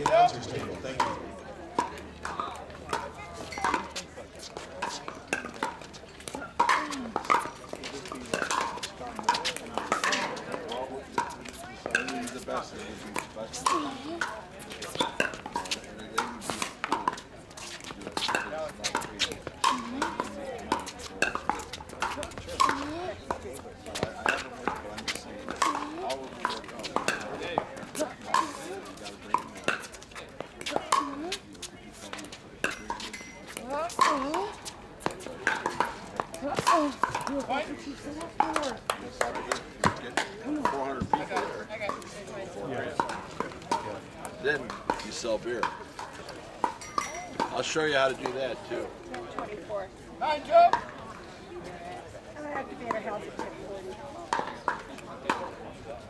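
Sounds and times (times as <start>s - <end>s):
spectators chattering: 0.0s - 56.0s.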